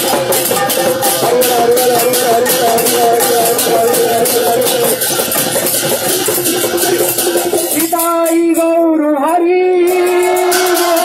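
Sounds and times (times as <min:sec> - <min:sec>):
jingling hand cymbals: 0:00.0 - 0:11.0
percussion rhythm: 0:00.0 - 0:11.0.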